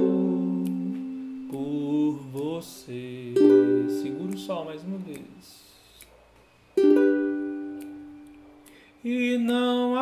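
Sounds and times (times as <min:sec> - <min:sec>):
ukulele chord ringing: 0:00.0 - 0:01.5, 0:03.2 - 0:04.7, 0:06.8 - 0:08.4.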